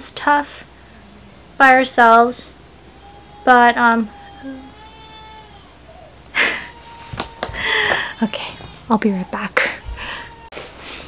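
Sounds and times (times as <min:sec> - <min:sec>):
baby crying: 0:02.8 - 0:10.5.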